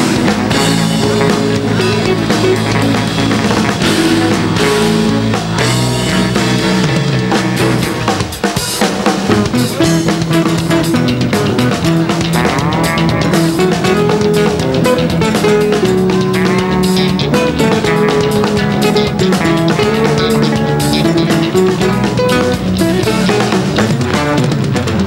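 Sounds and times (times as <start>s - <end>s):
electric bass guitars: 0.0s - 25.0s
rock drum kit: 0.0s - 25.0s.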